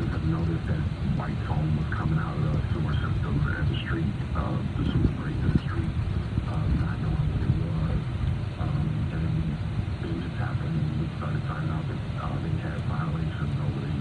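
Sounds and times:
muffled speech from car radio: 0.0s - 8.0s, 8.6s - 14.0s
car engine rumble: 0.0s - 14.0s.

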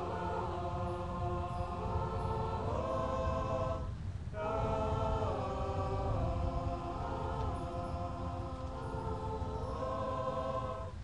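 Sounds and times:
marching band sustained chords: 0.0s - 11.0s.

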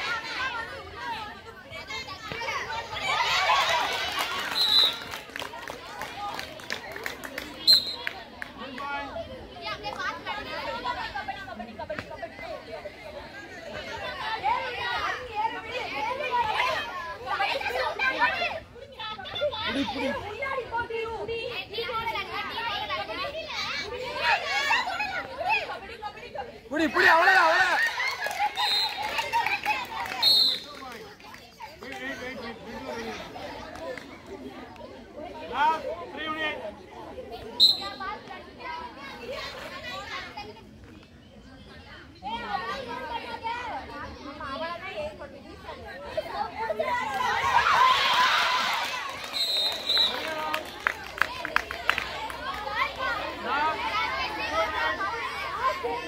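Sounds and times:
girls shouting and calling out: 13.7s - 30.3s.

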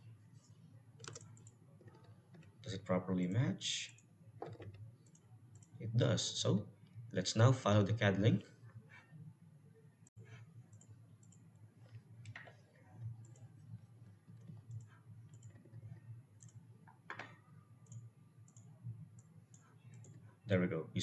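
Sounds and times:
computer mouse clicks: 1.0s - 2.5s, 10.2s - 15.8s, 16.4s - 20.2s.

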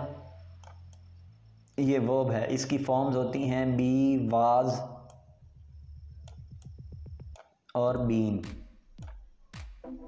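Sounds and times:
faint high whine: 0.0s - 3.9s
soft low clicks speeding up: 0.6s - 1.8s, 5.0s - 7.5s.

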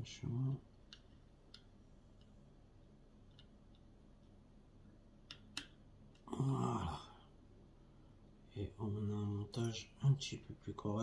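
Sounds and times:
short vocal sound: 6.2s - 7.3s.

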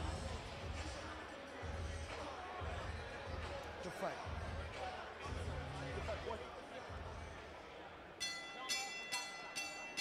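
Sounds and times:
faint indistinct voices: 0.0s - 10.0s.

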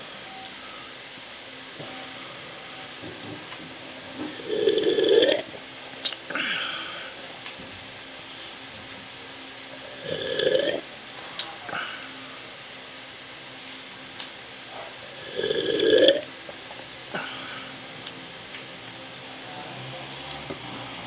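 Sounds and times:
person gulping: 4.4s - 5.4s, 10.0s - 10.8s, 15.2s - 16.2s
man burping loudly: 4.4s - 5.5s, 10.0s - 10.8s, 15.2s - 16.3s.

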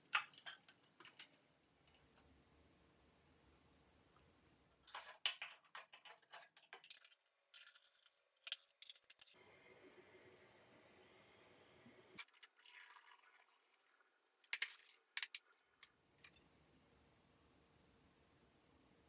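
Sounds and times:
liquid pouring through funnel: 12.2s - 14.5s.

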